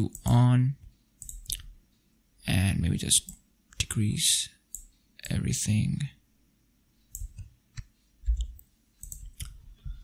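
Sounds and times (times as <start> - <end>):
computer mouse and keyboard clicks: 1.2 - 1.7, 7.1 - 9.6.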